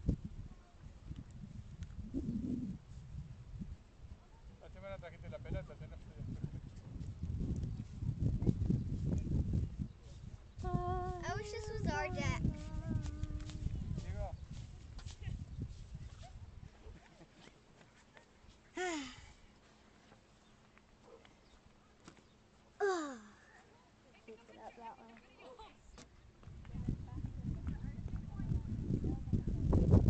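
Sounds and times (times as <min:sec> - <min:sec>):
wind buffeting microphone: 0:00.0 - 0:17.0, 0:26.3 - 0:30.0
short vocal sound: 0:22.8 - 0:23.4.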